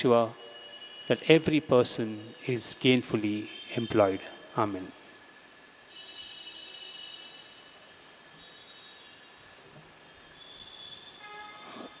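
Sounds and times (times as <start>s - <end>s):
faint high-pitched squealing tones: 0.0s - 5.2s, 5.8s - 12.0s
low background noise: 0.0s - 12.0s.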